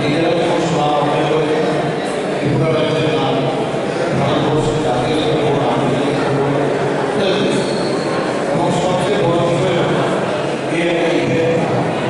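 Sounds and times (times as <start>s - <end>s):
man speaking over loudspeaker: 0.0s - 7.9s, 8.5s - 12.0s.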